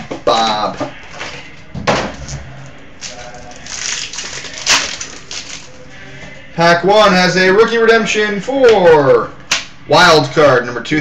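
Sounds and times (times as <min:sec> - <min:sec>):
foil wrapper rustling and crackling: 0:02.7 - 0:05.8.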